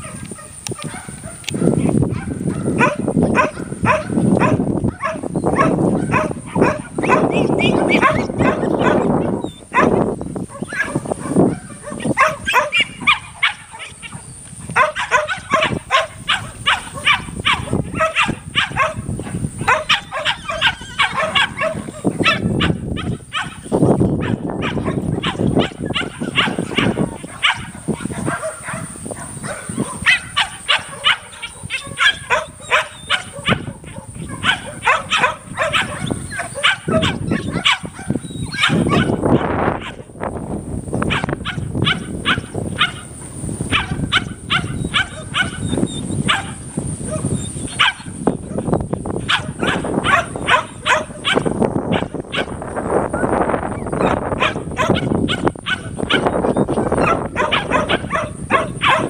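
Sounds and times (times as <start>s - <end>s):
dog barking and yipping: 0.0s - 40.1s, 41.0s - 59.0s
cattle bawling: 1.5s - 28.6s.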